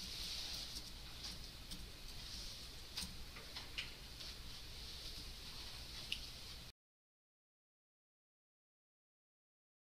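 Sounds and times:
steady hiss: 0.0s - 6.7s.

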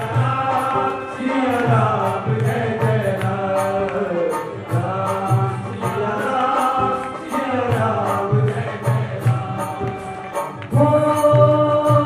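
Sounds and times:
devotional chanting with music: 0.0s - 12.0s
steady drum beat: 0.0s - 12.0s.

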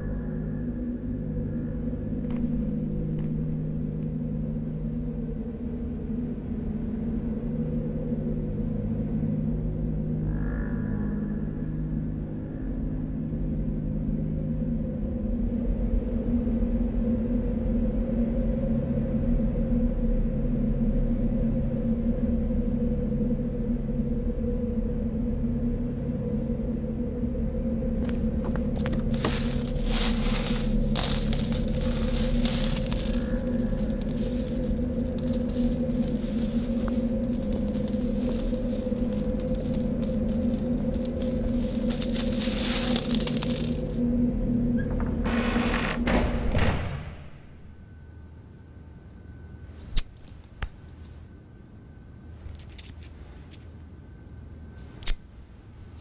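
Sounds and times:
low droning soundtrack: 0.0s - 56.0s
metallic clinks and jingles: 29.2s - 44.0s, 49.9s - 50.6s, 52.4s - 53.7s, 54.9s - 56.0s.

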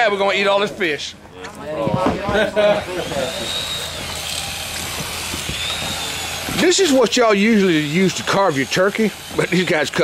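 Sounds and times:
electric knife motor whining: 2.6s - 10.0s.

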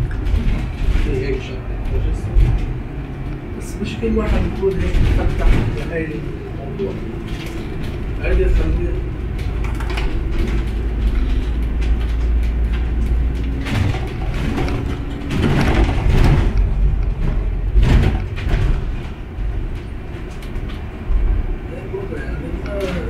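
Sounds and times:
bus engine and road rumble: 0.0s - 23.0s.

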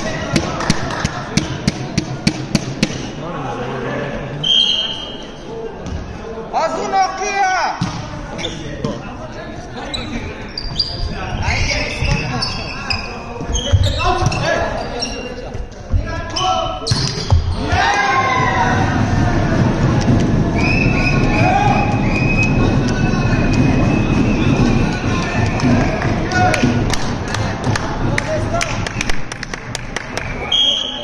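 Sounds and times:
referee's whistle: 4.4s - 5.3s, 30.2s - 31.0s
players shouting: 17.5s - 28.5s.

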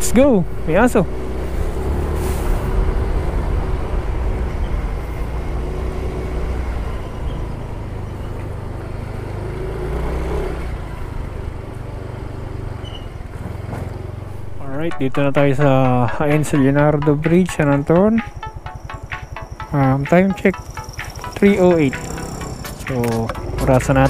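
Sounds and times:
road and wind noise: 0.0s - 24.0s
scooter engine running: 16.8s - 24.0s.

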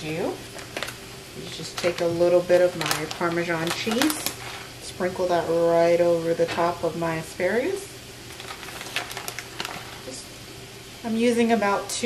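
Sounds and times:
vegetables sizzling in a skillet: 0.0s - 12.0s.

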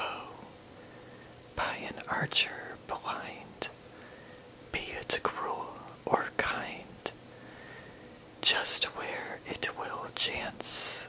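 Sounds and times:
person whispering: 0.0s - 0.5s, 1.6s - 3.7s, 4.8s - 7.2s, 8.4s - 11.0s.

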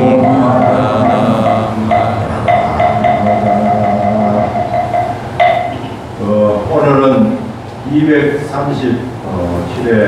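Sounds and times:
voices chanting in held notes: 0.0s - 6.0s.

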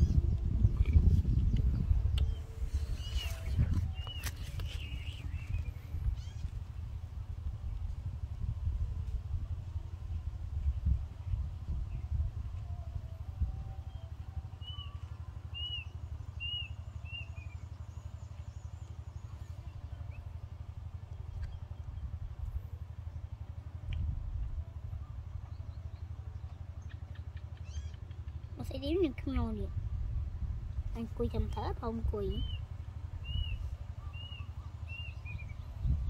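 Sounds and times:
small bird chirping: 0.0s - 6.6s, 13.9s - 20.3s, 25.4s - 28.7s, 31.3s - 36.0s
wind rumbling on microphone: 0.0s - 36.0s.

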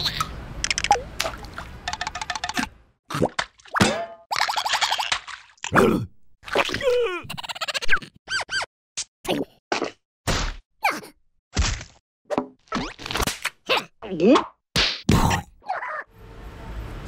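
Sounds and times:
squeaky cartoon vocal noises: 6.6s - 8.7s, 15.6s - 16.1s.

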